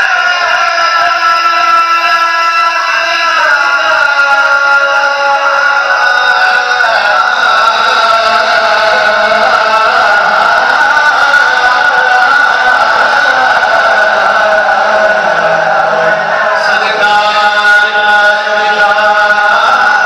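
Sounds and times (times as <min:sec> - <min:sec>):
man singing through loudspeaker: 0:00.0 - 0:20.0.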